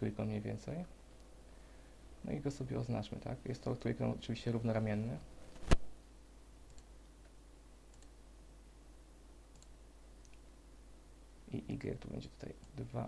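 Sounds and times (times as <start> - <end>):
computer mouse click: 6.7 - 6.9, 7.9 - 8.2, 9.5 - 10.4.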